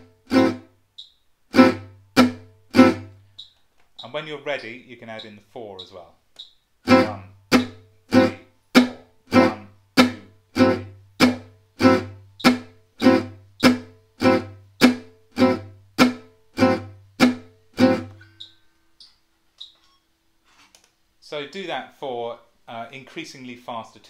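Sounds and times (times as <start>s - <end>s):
acoustic guitar strumming: 0.0s - 0.8s, 1.5s - 6.0s, 6.8s - 18.8s.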